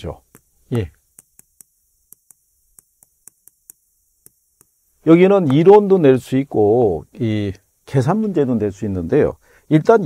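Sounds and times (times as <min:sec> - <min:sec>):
chalk tapping on chalkboard: 0:00.2 - 0:05.6.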